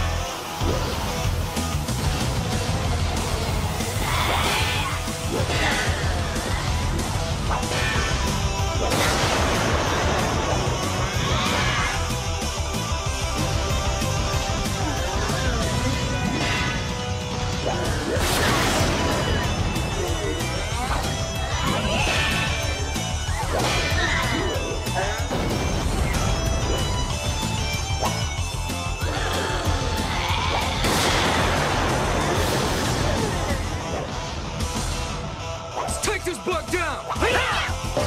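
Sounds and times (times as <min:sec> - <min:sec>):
action soundtrack music: 0:00.0 - 0:38.0.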